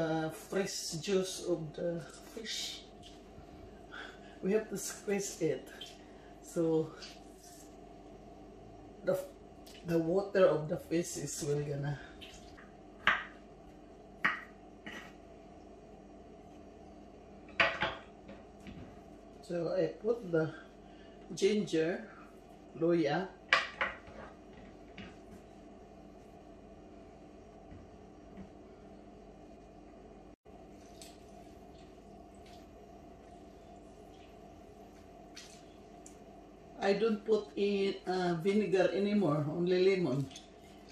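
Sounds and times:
steady low hum: 0.0s - 40.9s
lemon squelching through strainer: 30.6s - 36.2s.

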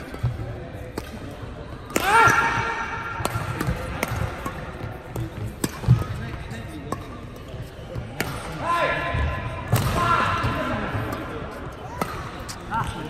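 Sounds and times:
rackets striking shuttlecock: 0.1s - 6.3s, 8.2s - 8.6s, 9.7s - 10.0s, 11.0s - 13.0s.

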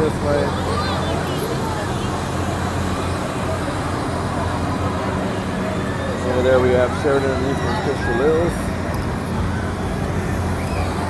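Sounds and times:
crowd chatter: 0.0s - 11.0s
steady low machine drone: 0.0s - 11.0s.

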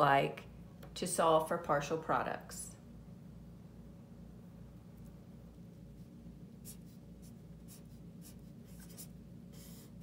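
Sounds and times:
marker writing on paper: 6.0s - 10.0s.

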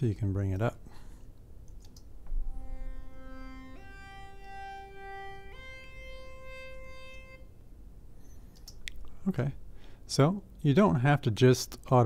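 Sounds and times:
synthesizer lead notes: 2.3s - 7.5s.

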